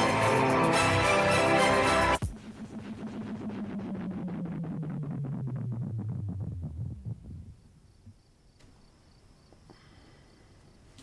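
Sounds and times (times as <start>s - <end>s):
low throbbing electronic drone: 0.0s - 7.9s
crickets chirping: 7.2s - 11.0s.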